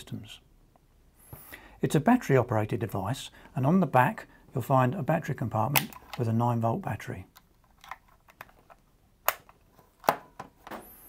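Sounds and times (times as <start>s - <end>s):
sharp plastic clicks: 5.7s - 6.2s.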